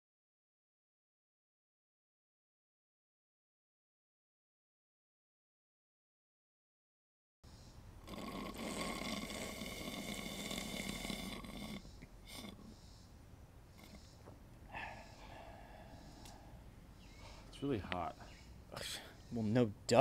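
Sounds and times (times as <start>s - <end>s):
soft breaths: 7.5s - 19.6s
small mouth sounds: 8.0s - 12.8s, 13.7s - 14.2s
person groaning exhale: 14.7s - 16.5s.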